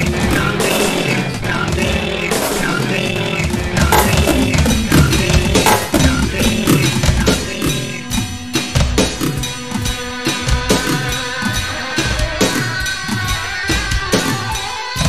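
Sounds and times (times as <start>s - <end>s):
dense instrumental backing: 0.0s - 15.0s
drum kit: 0.0s - 15.0s.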